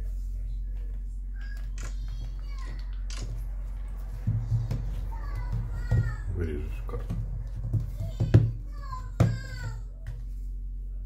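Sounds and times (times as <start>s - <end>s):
steady low hum: 0.0s - 11.0s
child's voice: 1.4s - 3.1s, 4.5s - 6.8s, 7.8s - 10.1s.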